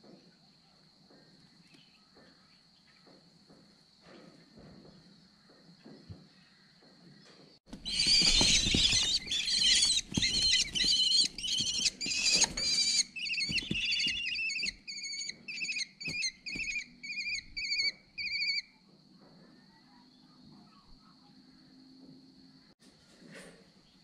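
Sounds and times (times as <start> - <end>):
scuffling: 7.7 - 14.9, 16.0 - 16.8
kestrel chicks calling: 7.7 - 18.7.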